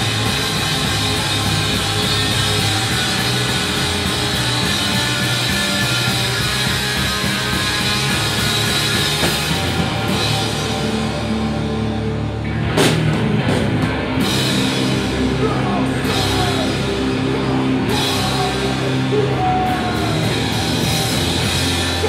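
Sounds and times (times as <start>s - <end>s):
heavy rock band playing: 0.0s - 22.0s.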